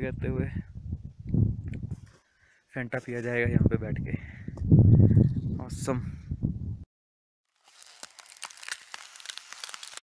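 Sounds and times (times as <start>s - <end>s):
dense high-pitched crackling: 7.6s - 10.0s.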